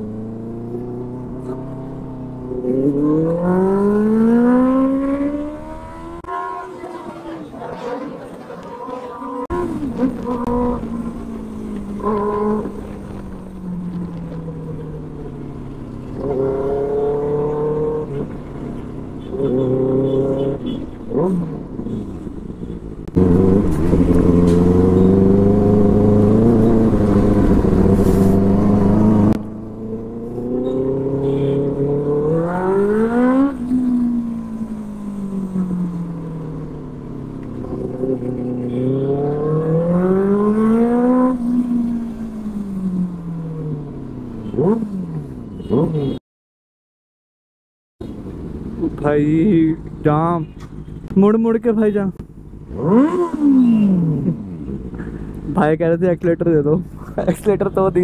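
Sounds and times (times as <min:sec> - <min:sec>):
motorcycle engine revving: 0:00.0 - 0:07.4, 0:09.2 - 0:46.2, 0:51.7 - 0:55.7.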